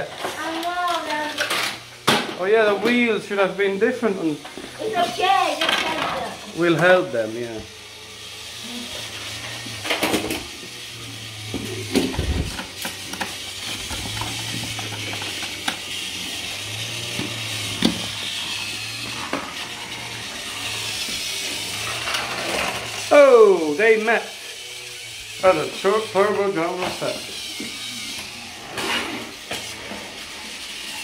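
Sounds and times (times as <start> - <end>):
toy train motors whirring: 0.0 - 31.0.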